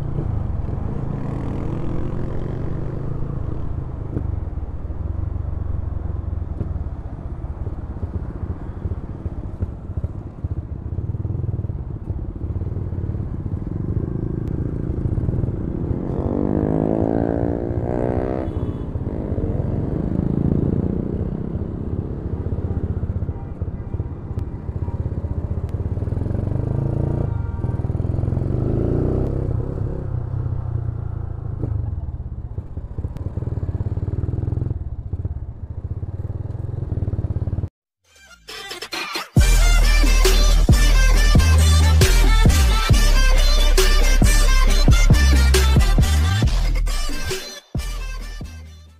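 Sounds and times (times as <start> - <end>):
motorcycle engine revving: 0.0 - 23.4, 24.0 - 37.7, 39.4 - 47.4.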